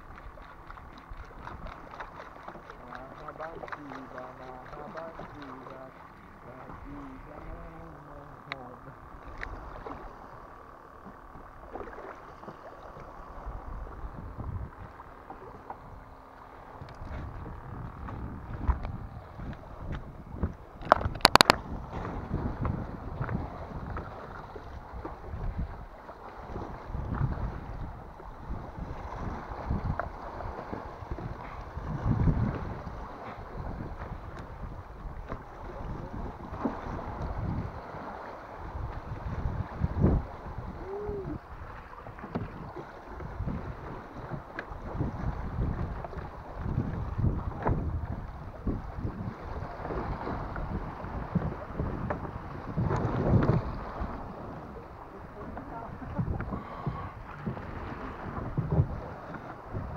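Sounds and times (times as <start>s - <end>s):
water lapping against boat hull: 0.0s - 59.9s
wind buffeting microphone: 0.0s - 59.9s.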